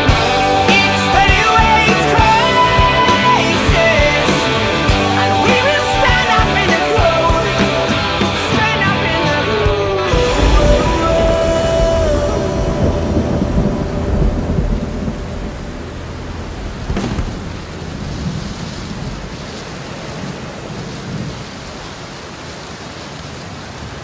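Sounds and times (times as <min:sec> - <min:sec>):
steady rain: 0:00.0 - 0:24.0
thunder rumbling: 0:08.7 - 0:22.3.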